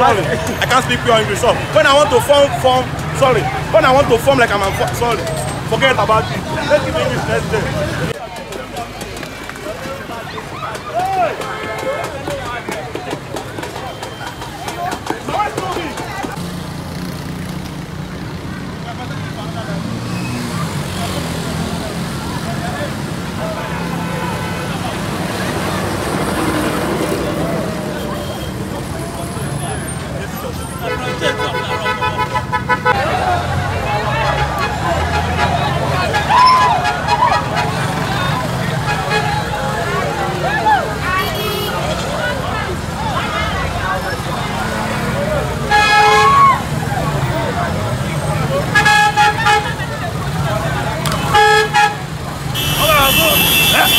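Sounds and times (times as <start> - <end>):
street crowd chatter: 0.0 - 53.9
traffic: 0.0 - 53.9
vehicle horn honking: 41.2 - 41.9, 48.7 - 49.8, 51.2 - 53.9.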